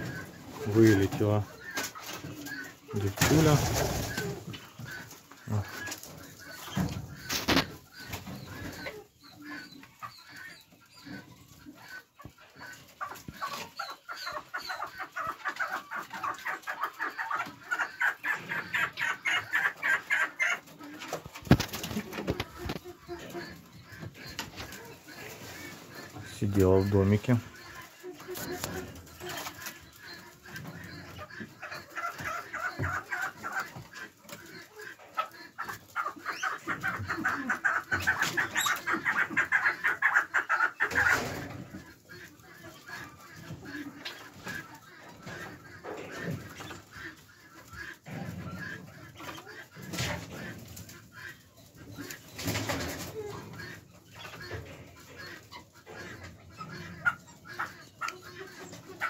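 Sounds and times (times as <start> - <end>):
chickens calling: 0.0 - 59.0.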